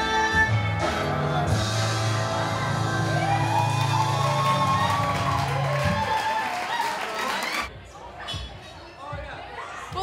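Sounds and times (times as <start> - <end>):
audience cheering and applauding: 2.6 - 7.7.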